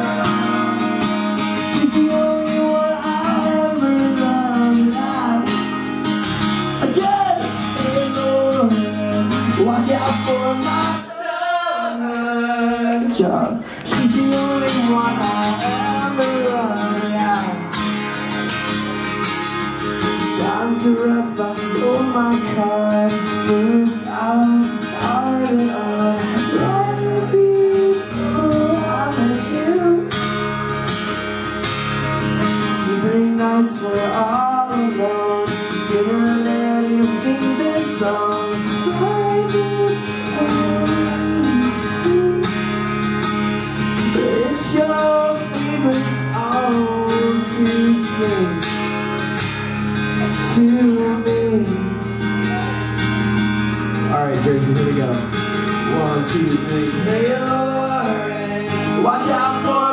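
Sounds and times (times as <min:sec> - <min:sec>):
guitar strumming: 0:00.0 - 0:59.9.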